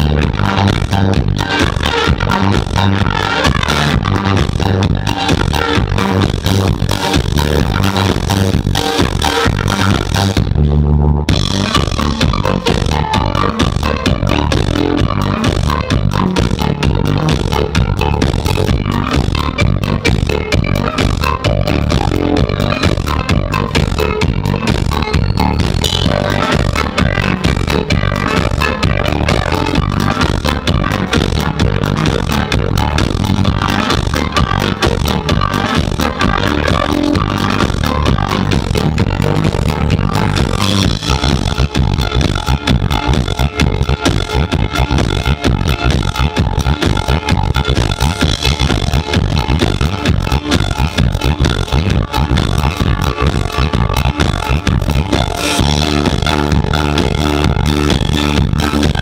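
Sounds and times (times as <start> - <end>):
drum kit steady beat: 0.0 - 10.6, 11.3 - 59.0.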